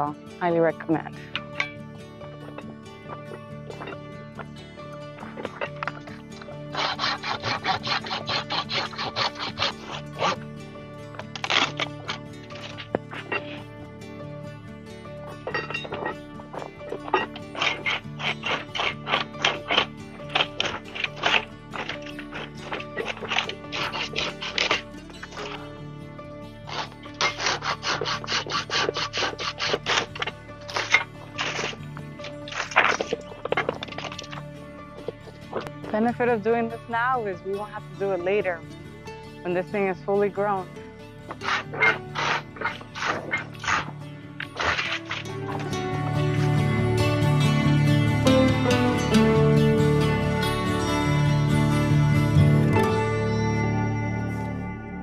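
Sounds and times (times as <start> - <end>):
background music: 0.0 - 55.0
hand saw cutting branch: 5.2 - 10.4, 11.2 - 13.7, 15.5 - 25.7, 26.7 - 35.7, 41.3 - 46.6.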